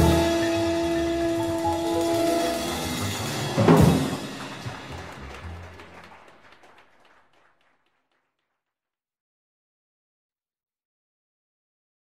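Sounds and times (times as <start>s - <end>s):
jazz band playing: 0.0s - 6.5s.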